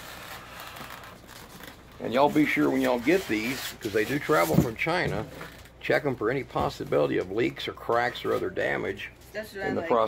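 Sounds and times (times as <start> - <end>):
cardboard and foam rustling: 0.0 - 5.7.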